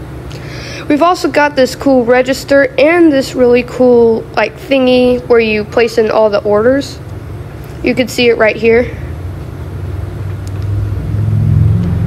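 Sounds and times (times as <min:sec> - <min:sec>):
low mechanical rumbling hum: 0:00.0 - 0:12.0.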